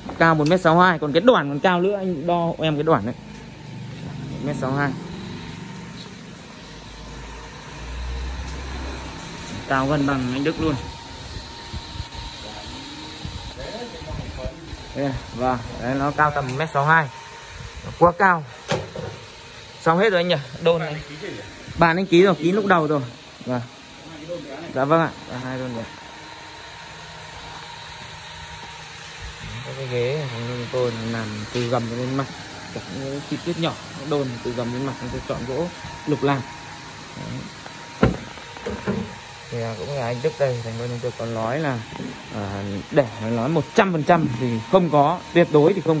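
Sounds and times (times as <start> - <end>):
even hiss: 11.7 - 46.0.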